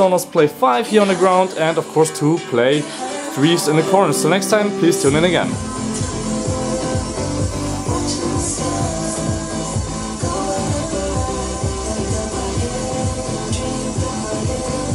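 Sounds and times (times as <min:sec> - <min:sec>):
music with beat and deep bass: 0:00.0 - 0:14.9.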